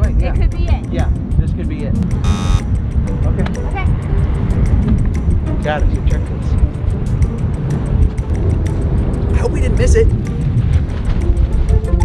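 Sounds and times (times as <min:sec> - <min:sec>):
wind rumble on microphone: 0:00.0 - 0:12.0
wrong answer buzzer: 0:02.2 - 0:02.7.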